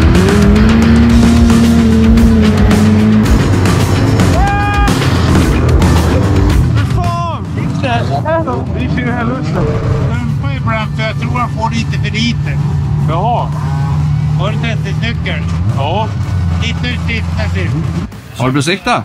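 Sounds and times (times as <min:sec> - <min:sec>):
low engine hum: 0:00.0 - 0:18.2
indistinct voices talking: 0:00.0 - 0:19.0.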